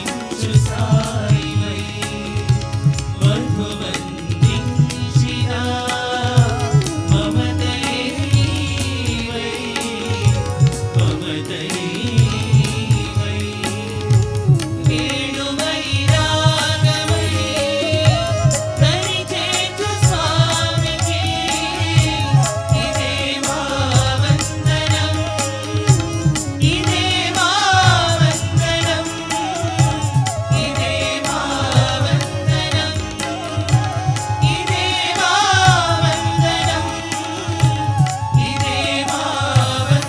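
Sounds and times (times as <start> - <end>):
hand drums: 0.0 - 40.0
men singing devotional song: 0.0 - 40.0
steady drone: 0.0 - 40.0.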